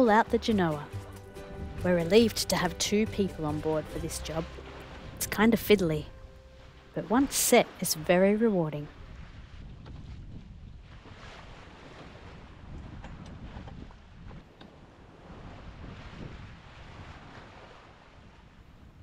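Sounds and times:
sea washing past yacht: 0.0s - 19.0s
wind buffeting microphone: 0.7s - 7.3s, 8.6s - 19.0s.

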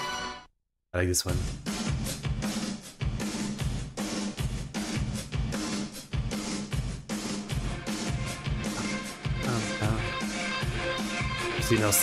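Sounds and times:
hard rock music: 1.5s - 12.0s.

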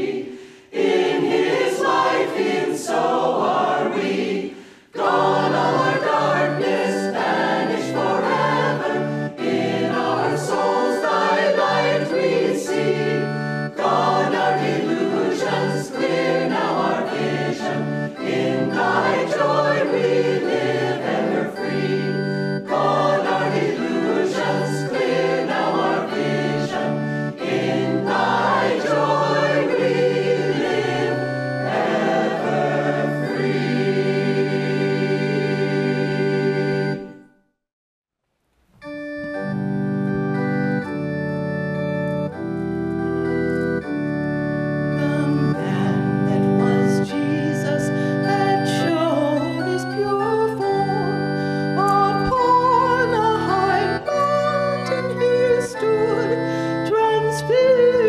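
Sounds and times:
mixed choir singing a hymn: 0.0s - 37.2s, 45.0s - 58.0s.

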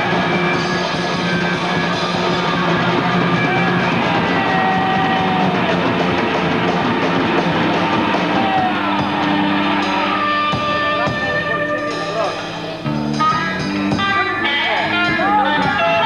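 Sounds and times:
bending lead guitar notes: 0.0s - 16.0s
rock band playing live: 0.0s - 16.0s.

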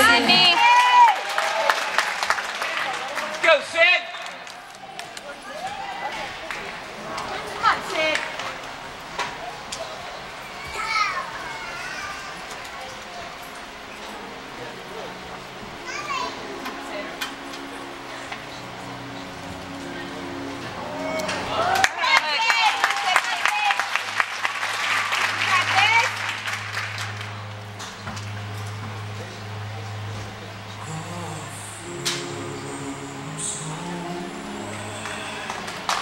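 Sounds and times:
spectators clapping: 0.0s - 9.0s, 21.1s - 28.4s, 34.9s - 36.0s
children chattering: 5.2s - 23.8s.

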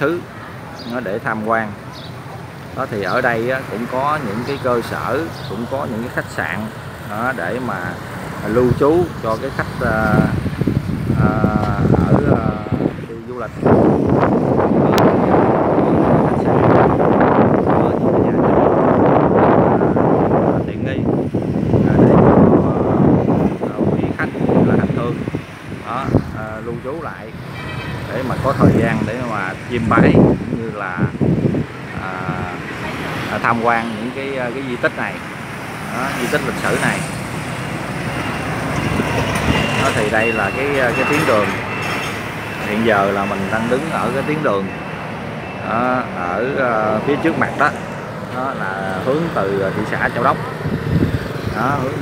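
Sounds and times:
bus running: 0.0s - 52.0s
motorbike engines: 0.0s - 52.0s
wind buffeting microphone: 0.0s - 52.0s.

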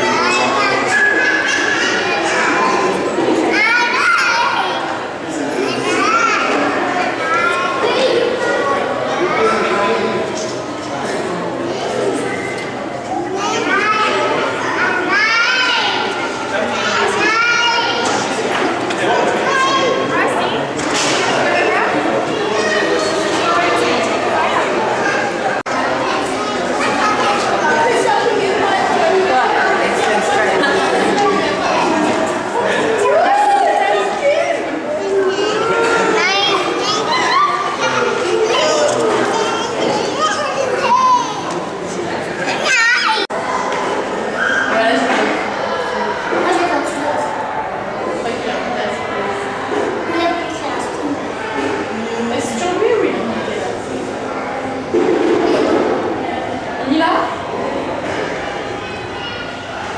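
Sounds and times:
voices chattering in a hall: 0.0s - 59.9s.

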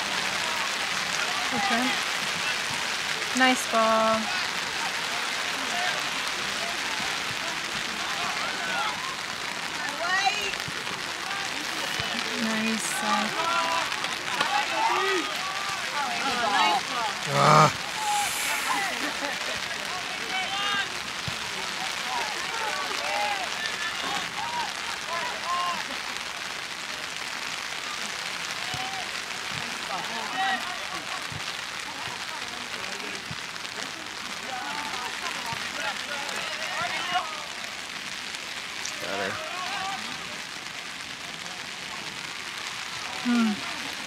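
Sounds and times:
steady rain hiss: 0.0s - 44.0s.

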